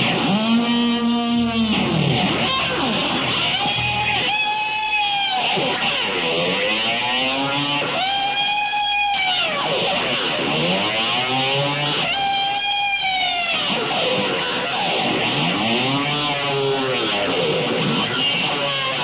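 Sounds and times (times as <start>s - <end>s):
whooshing guitar effect: 0.0s - 8.2s
electric guitar rock jam: 0.0s - 19.0s.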